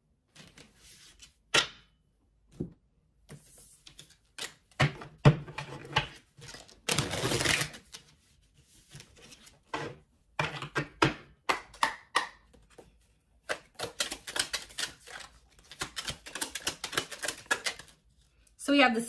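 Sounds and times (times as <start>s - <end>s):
cards being shuffled: 12.5s - 18.2s.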